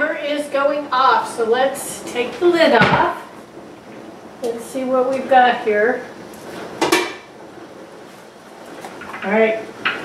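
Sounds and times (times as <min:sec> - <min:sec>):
pot lid clanking against pot: 0:06.8 - 0:07.3.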